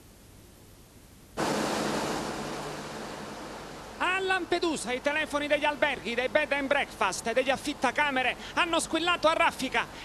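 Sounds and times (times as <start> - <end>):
wind and sea rushing: 1.4 - 5.1.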